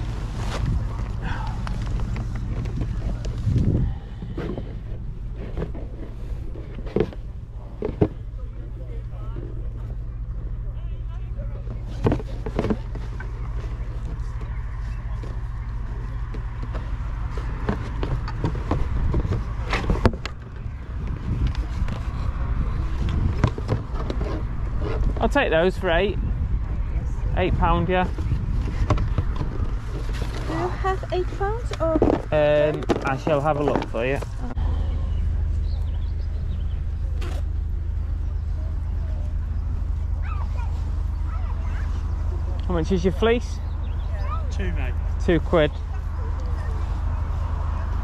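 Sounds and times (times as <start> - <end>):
low hum: 0.0 - 48.0
background chatter: 25.7 - 48.0.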